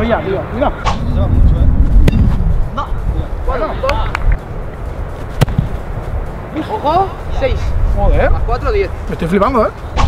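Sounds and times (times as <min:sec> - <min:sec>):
wind rumble on microphone: 0:00.0 - 0:10.0
sharp knock: 0:00.8 - 0:01.1
foot kicking a ball: 0:01.9 - 0:02.6, 0:05.2 - 0:06.1.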